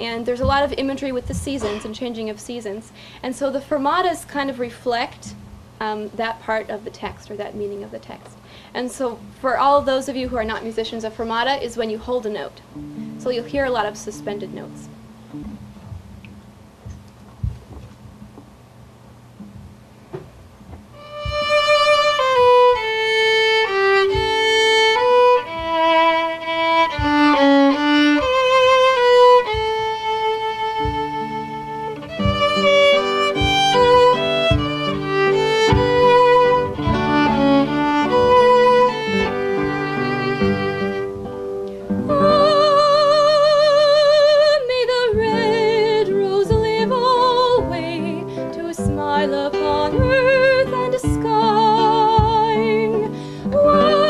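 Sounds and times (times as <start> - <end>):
acoustic guitar: 0.0 - 5.6, 6.2 - 18.6, 19.2 - 54.0
violin playing slow melody: 21.0 - 44.0, 45.1 - 54.0
woman singing: 42.0 - 54.0.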